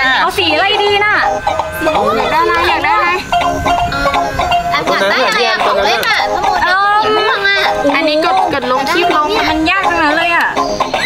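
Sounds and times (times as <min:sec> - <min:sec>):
children talking excitedly: 0:00.0 - 0:11.0.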